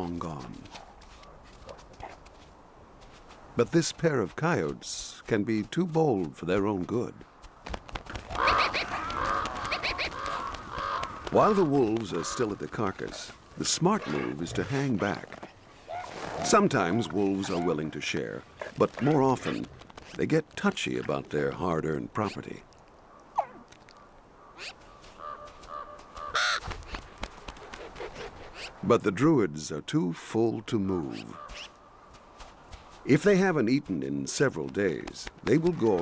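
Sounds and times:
ravens calling: 8.1s - 20.3s, 21.1s - 28.9s, 31.0s - 33.3s
raven harsh caw: 8.3s - 12.8s, 24.4s - 26.7s, 31.2s - 31.9s.

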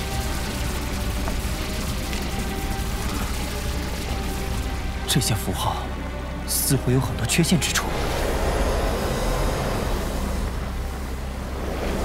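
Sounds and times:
rumbling hissing ambience: 0.0s - 12.0s.

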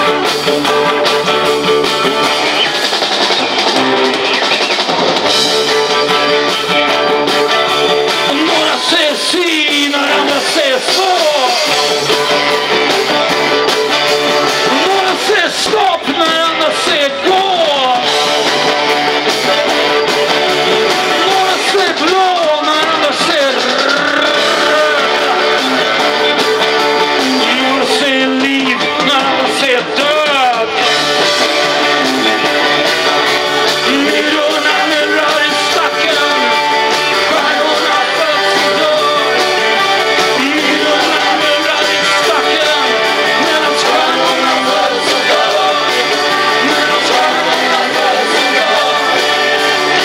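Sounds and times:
harmonica bending notes: 0.0s - 15.3s, 16.1s - 50.0s
bass guitar: 0.0s - 50.0s
drum kit beat: 0.0s - 50.0s
electric guitars: 0.0s - 50.0s
live rock band: 0.0s - 50.0s.

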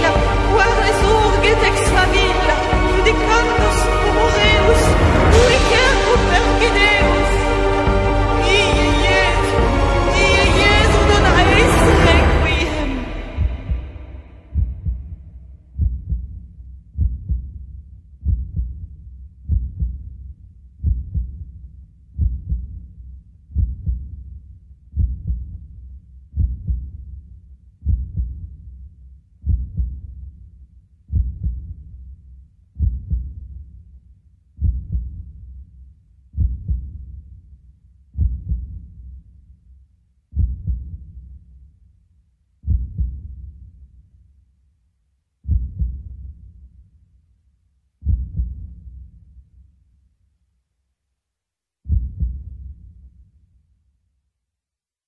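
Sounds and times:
heartbeat-like low thumps: 0.0s - 27.2s, 27.8s - 28.7s, 29.4s - 30.3s, 31.1s - 32.0s, 32.8s - 33.6s, 34.6s - 35.6s, 36.4s - 37.4s, 38.2s - 39.0s, 40.3s - 41.3s, 42.6s - 43.7s, 45.4s - 46.5s, 48.0s - 49.1s, 51.9s - 52.9s.

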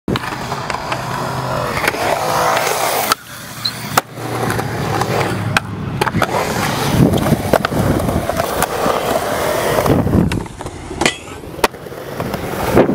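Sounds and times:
skateboard clacks: 0.1s - 12.9s
skateboard wheels rolling on concrete: 0.1s - 12.9s.

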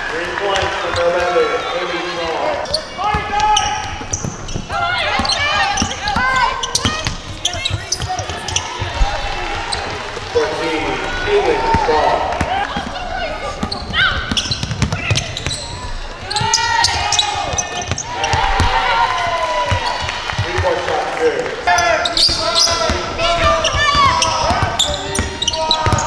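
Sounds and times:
players calling out: 0.1s - 26.0s
shoe squeaks: 2.6s - 8.9s, 13.5s - 18.4s, 21.7s - 26.0s
basketball bouncing: 2.6s - 10.3s, 11.1s - 20.8s, 22.1s - 26.0s.

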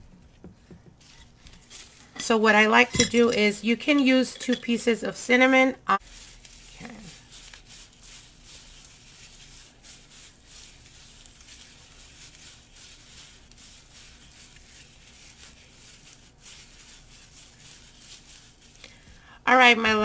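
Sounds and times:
plastic gloves rustling: 0.0s - 5.0s, 6.0s - 20.0s.

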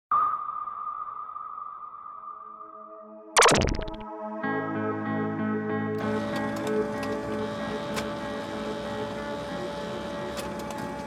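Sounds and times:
synthesized ping: 3.4s - 4.0s.

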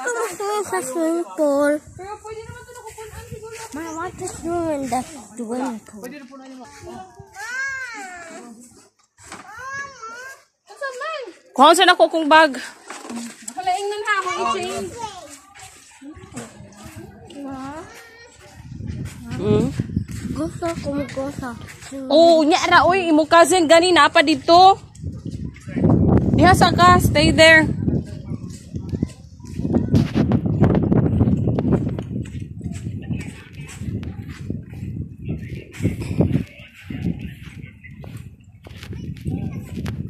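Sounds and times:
footsteps on sand: 2.1s - 11.5s, 13.3s - 40.0s
child's voice: 6.8s - 8.6s, 9.4s - 10.5s, 14.2s - 15.4s, 17.4s - 18.7s, 20.3s - 22.4s.

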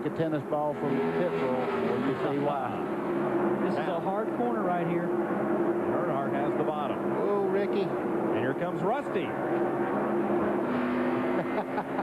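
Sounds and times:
racing car engines droning: 0.0s - 12.0s.

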